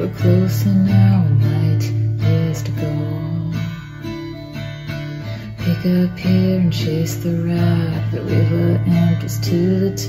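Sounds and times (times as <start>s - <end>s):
person singing: 0.0s - 4.2s, 5.4s - 10.0s
acoustic guitar strumming: 0.0s - 10.0s.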